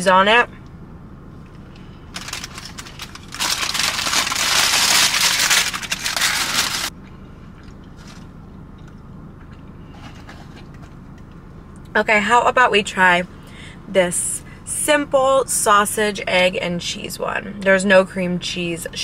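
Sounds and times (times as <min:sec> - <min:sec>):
paper wrapper crinkling: 0:02.1 - 0:06.9.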